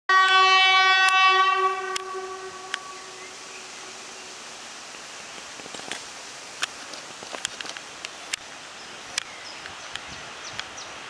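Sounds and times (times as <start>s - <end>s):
locomotive horn blast: 0.1s - 3.5s.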